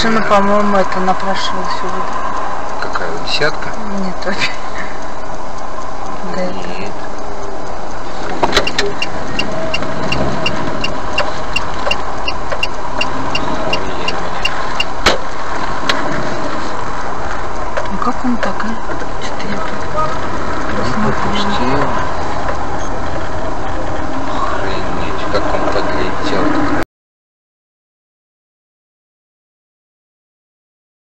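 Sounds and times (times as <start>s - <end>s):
turn signal ticking: 0.0s - 26.8s
car cabin driving noise: 2.8s - 26.8s
sharp clicks: 5.2s - 20.8s.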